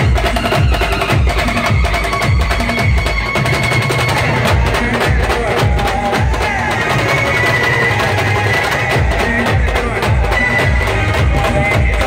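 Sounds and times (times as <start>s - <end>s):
large drums beating: 0.0s - 12.0s.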